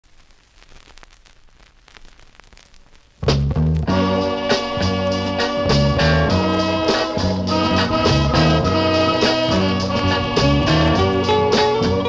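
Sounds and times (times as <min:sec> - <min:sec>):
vinyl record crackle and clicks: 0:00.0 - 0:12.0
soul record with bass and guitar: 0:00.1 - 0:12.0.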